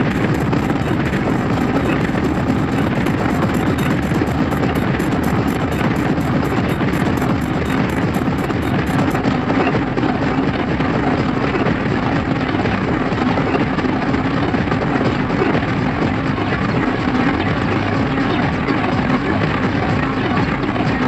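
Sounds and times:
industrial hardcore music: 0.0 - 21.0.

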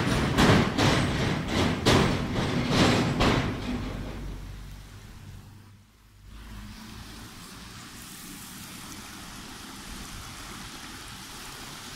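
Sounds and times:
water running over rocks: 6.2 - 11.9.

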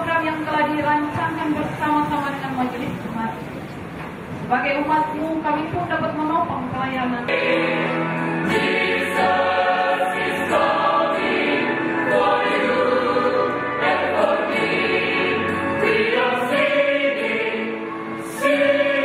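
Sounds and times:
mixed choir singing: 7.3 - 19.0.

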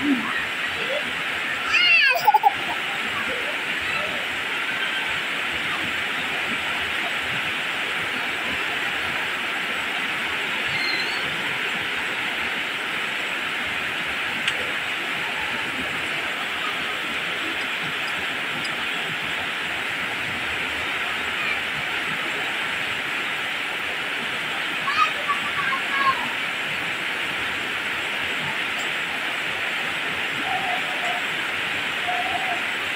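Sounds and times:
heavy rain on leaves: 0.0 - 32.9.

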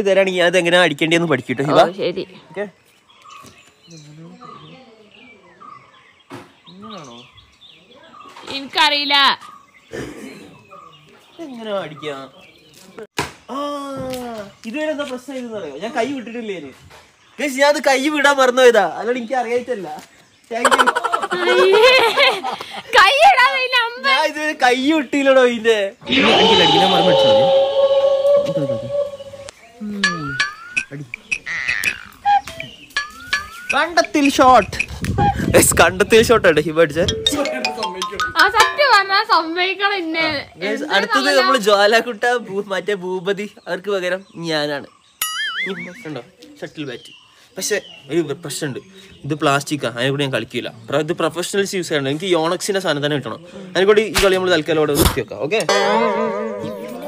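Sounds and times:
birds chirping: 0.0 - 57.0.

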